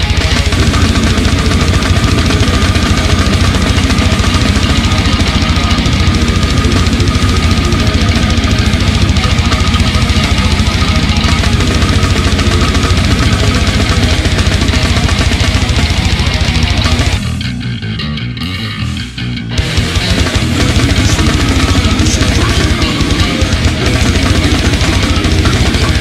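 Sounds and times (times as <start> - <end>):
fast bass drum strokes: 0.0 - 17.8, 18.6 - 26.0
extreme metal music: 0.0 - 26.0.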